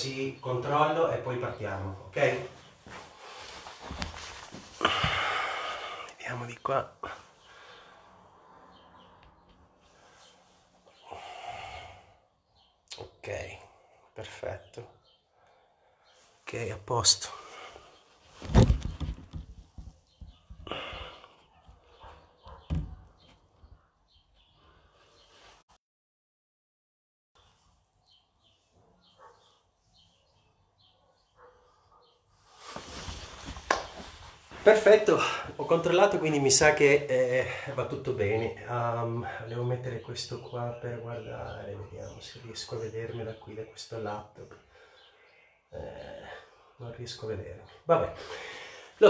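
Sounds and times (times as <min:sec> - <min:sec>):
person breathing out: 0:04.8 - 0:06.2, 0:20.6 - 0:21.4
person rustling and knocking: 0:18.4 - 0:20.7
small bird chirping: 0:21.4 - 0:25.4, 0:27.4 - 0:32.7.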